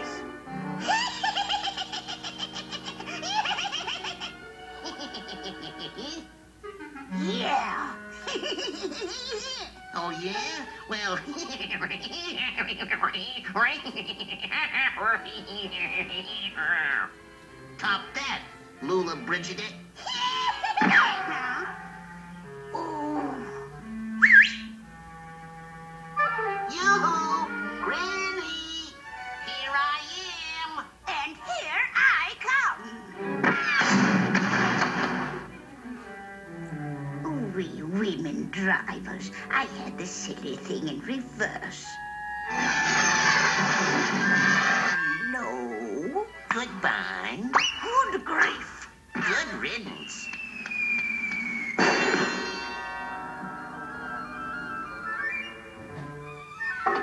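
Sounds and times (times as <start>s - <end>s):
orchestral music underscore: 0.0s - 13.6s, 14.9s - 47.6s, 48.2s - 57.0s
high-pitched cartoon cackle: 0.8s - 6.3s, 8.1s - 9.8s, 11.4s - 16.3s, 20.0s - 21.8s, 33.5s - 34.1s
rising whistle-like slide: 24.2s - 24.7s, 50.1s - 51.8s.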